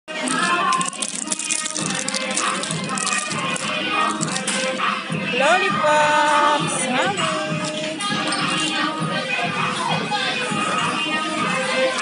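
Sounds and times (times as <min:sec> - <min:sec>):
music: 0:00.1 - 0:12.0
cellophane wrappers crinkling: 0:00.2 - 0:04.5.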